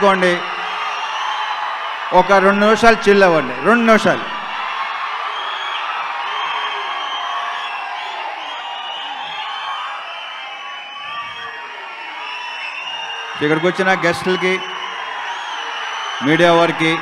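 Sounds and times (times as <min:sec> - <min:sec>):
audience cheering and whooping: 0:00.0 - 0:17.0.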